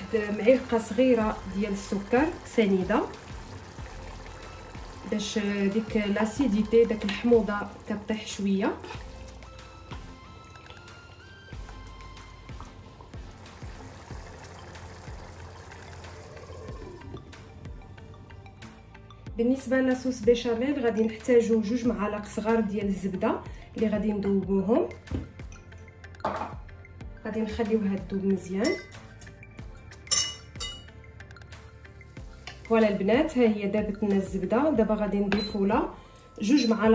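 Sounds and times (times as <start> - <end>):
soft background music: 0.0 - 36.9.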